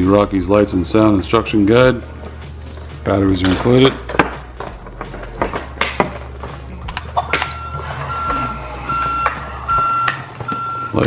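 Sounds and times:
electronic reversing beeps: 7.5 - 11.0.

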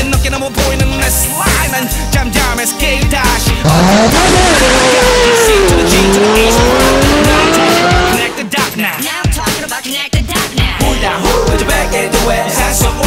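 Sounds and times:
hip-hop music: 0.0 - 13.0.

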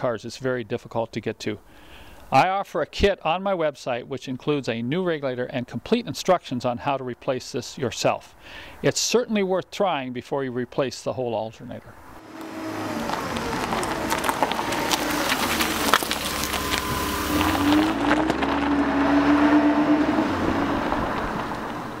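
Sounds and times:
car engine running: 12.2 - 22.0.

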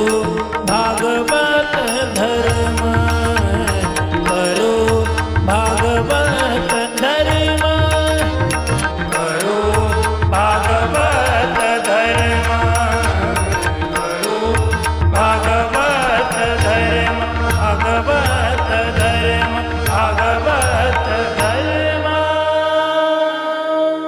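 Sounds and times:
wavering devotional melody: 0.0 - 24.0.

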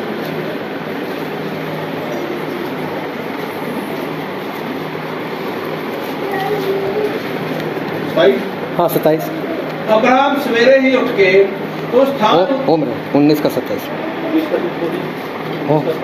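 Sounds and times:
machine humming: 0.0 - 16.0
steady rushing noise: 0.0 - 16.0.

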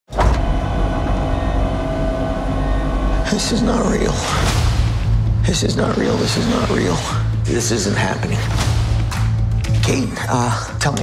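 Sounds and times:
low rumbling drone: 0.1 - 9.8
steady held tone: 0.5 - 4.1.

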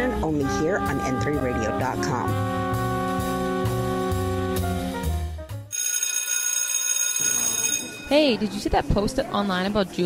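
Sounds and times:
electric bell ringing: 5.7 - 8.5.

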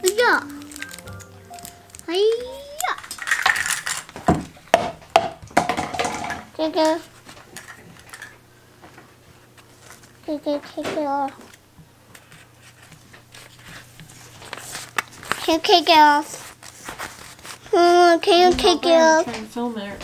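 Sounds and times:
objects clattering and rustling: 0.0 - 19.6.

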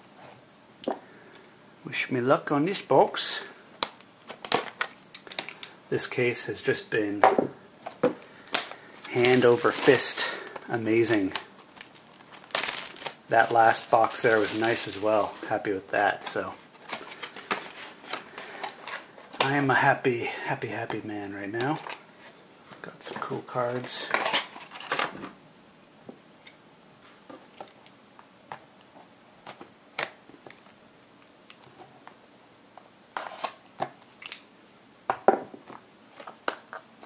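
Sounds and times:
cardboard boxes rustling: 10.9 - 19.6.

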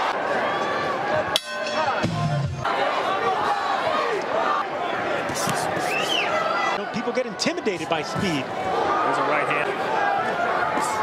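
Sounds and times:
arena crowd noise: 0.0 - 11.0
broadcast commentary voices: 5.2 - 9.9.

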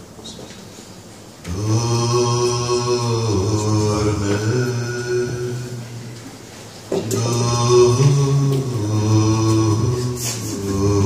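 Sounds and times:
man singing unaccompanied lullaby: 1.5 - 5.9, 7.0 - 11.0.

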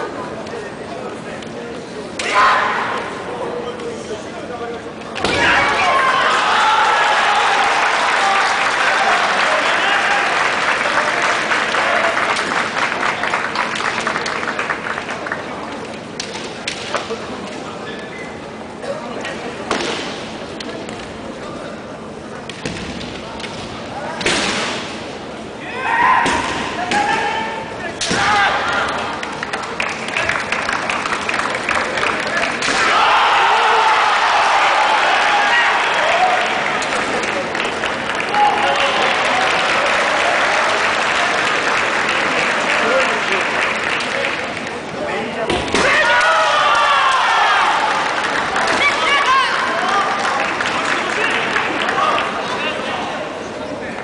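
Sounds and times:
fencers shouting: 2.2 - 3.2, 5.2 - 10.4, 25.6 - 29.2, 32.6 - 36.7, 45.8 - 48.1
bamboo swords striking: 28.0 - 28.5.

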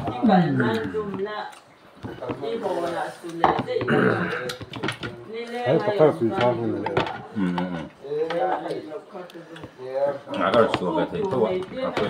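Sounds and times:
people talking at a table: 0.0 - 12.0.

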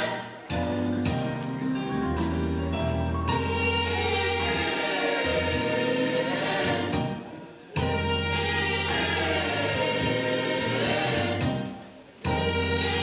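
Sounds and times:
gospel choir singing in harmony: 0.0 - 13.0
low bass accompaniment: 0.6 - 4.7.

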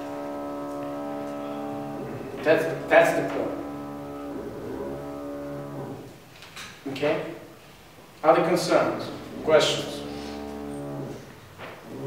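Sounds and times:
man's low hesitation sound: 0.0 - 6.1.

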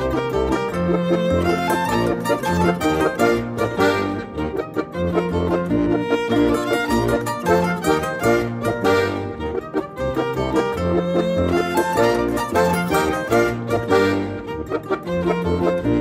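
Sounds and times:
button accordion: 0.0 - 16.0
violin melody: 0.0 - 16.0.

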